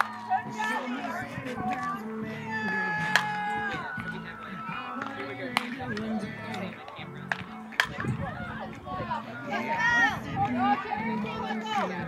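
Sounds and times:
players calling out sing-song cheers: 0:00.0 - 0:06.8.

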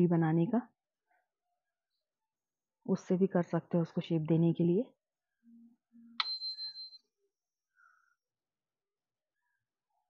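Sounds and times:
high-pitched bell-like ring: 0:06.2 - 0:07.0.

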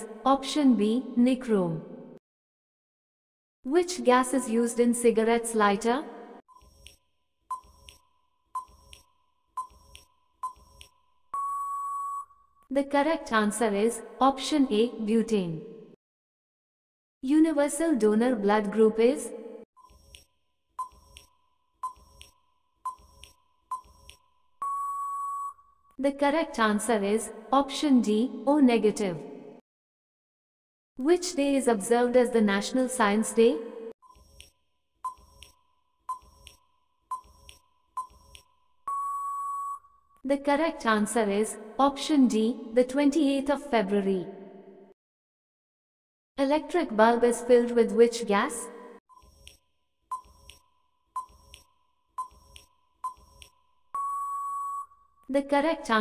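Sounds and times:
long steady beep: 0:09.6 - 0:12.4, 0:22.9 - 0:25.6, 0:37.1 - 0:39.9, 0:53.9 - 0:55.0.

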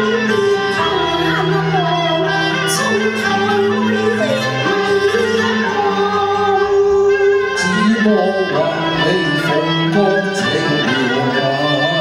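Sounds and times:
instrumental accompaniment: 0:00.0 - 0:12.0
woman singing opera: 0:00.0 - 0:12.0.

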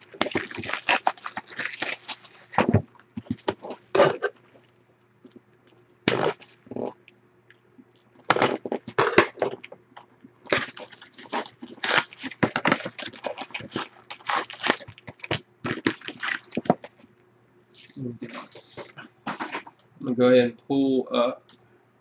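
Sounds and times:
cardboard box tearing: 0:00.0 - 0:04.4, 0:06.1 - 0:06.8, 0:10.5 - 0:16.9
foil packs crinkling and rustling: 0:00.0 - 0:06.9, 0:08.2 - 0:09.8, 0:10.4 - 0:17.1, 0:17.7 - 0:19.6.

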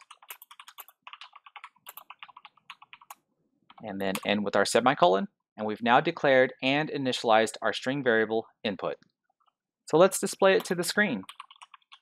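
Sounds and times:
computer keyboard typing: 0:00.0 - 0:04.4, 0:10.6 - 0:12.0.

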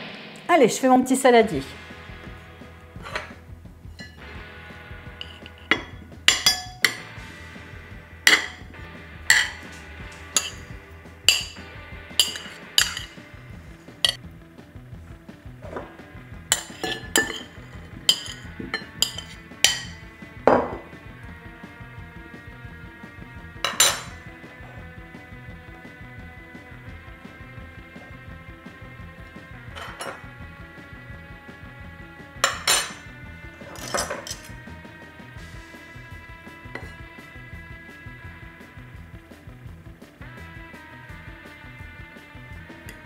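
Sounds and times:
background music: 0:00.0 - 0:43.0
kitchenware clinking: 0:03.0 - 0:03.4, 0:04.0 - 0:04.2, 0:05.2 - 0:07.1, 0:08.3 - 0:08.7, 0:09.3 - 0:13.3, 0:15.6 - 0:15.9, 0:16.5 - 0:20.9, 0:23.6 - 0:24.3, 0:29.7 - 0:30.3, 0:32.4 - 0:34.6, 0:36.8 - 0:37.0.

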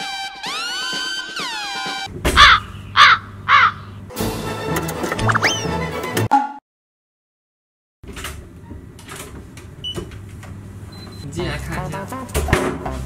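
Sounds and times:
falling electronic tones: 0:00.0 - 0:02.1
crow caws: 0:02.4 - 0:04.0.

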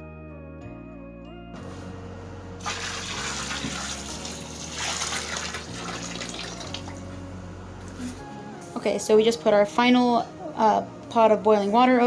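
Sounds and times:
water pouring into bathtub: 0:02.6 - 0:07.0.

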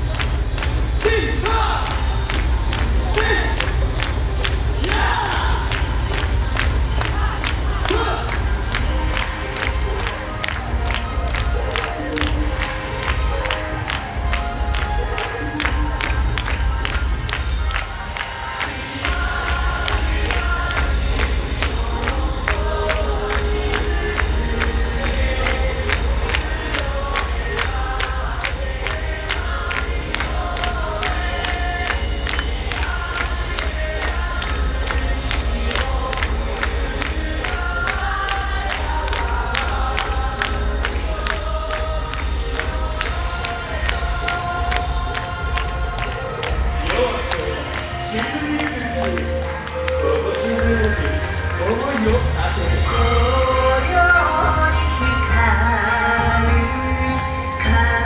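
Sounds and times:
amplified dance music: 0:00.0 - 0:58.0.

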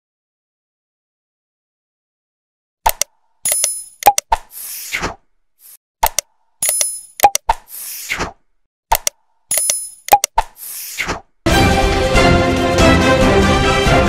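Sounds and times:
mouse-click sounds: 0:02.9 - 0:11.2.

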